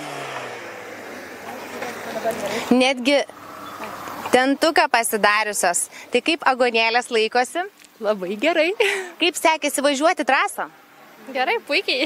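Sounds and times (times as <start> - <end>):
car engine humming: 0.0 - 12.0
outdoor noise: 0.0 - 12.0.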